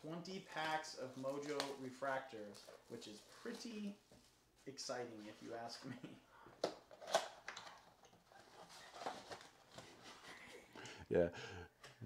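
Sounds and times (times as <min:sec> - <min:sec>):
cardboard and foil rustles: 0:08.3 - 0:10.4.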